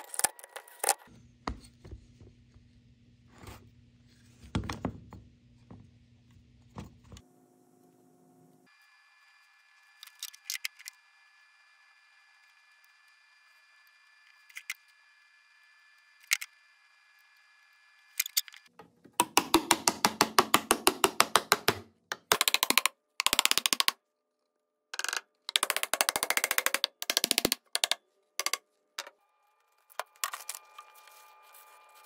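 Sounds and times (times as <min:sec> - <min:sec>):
hammer tapping plywood: 0:19.1 - 0:24.0, 0:25.5 - 0:28.6.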